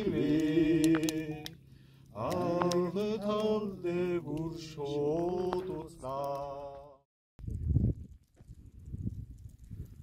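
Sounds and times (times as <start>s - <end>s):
man singing chant-like melody: 0.0s - 7.0s.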